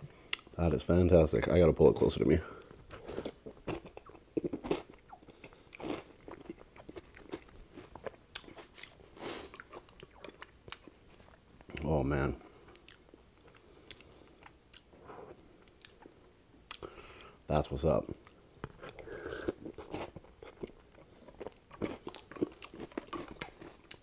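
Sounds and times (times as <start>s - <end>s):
wet chewing mouth sounds: 2.8s - 11.0s, 12.6s - 16.9s, 18.1s - 24.0s
crunching bites: 18.7s - 24.0s.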